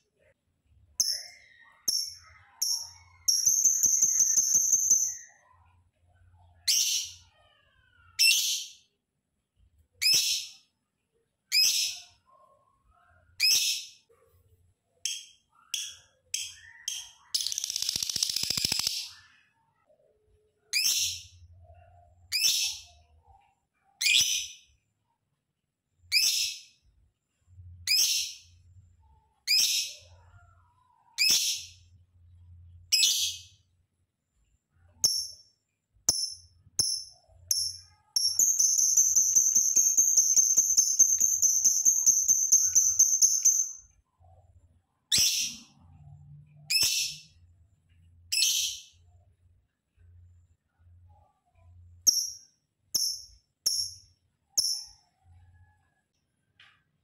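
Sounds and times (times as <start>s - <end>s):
lovebird shrill high-pitched calls: 1.0s - 5.4s, 16.9s - 19.2s, 36.2s - 43.8s.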